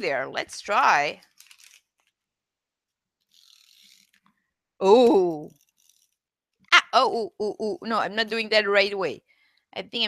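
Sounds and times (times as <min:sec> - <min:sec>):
tape roller scratchy whir: 0:03.3 - 0:04.2.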